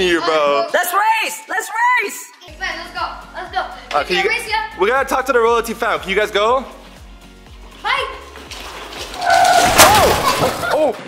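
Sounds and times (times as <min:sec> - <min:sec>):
loud crash: 0:09.2 - 0:10.9.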